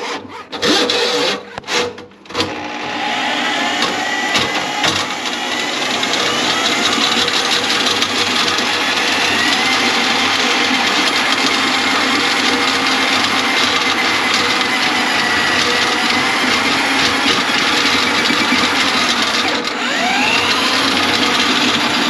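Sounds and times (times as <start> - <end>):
electric drain auger running: 0.0 - 22.0.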